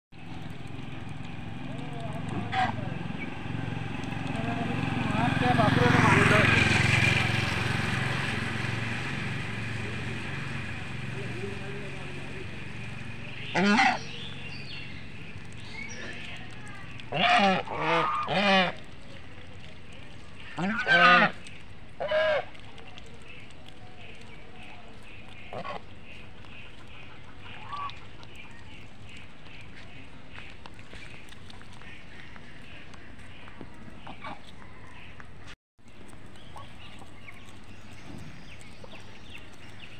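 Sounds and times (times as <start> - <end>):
low motor hum: 0.1 - 39.9
geese calling: 2.1 - 7.0, 11.0 - 19.0, 20.2 - 22.7, 24.0 - 35.3.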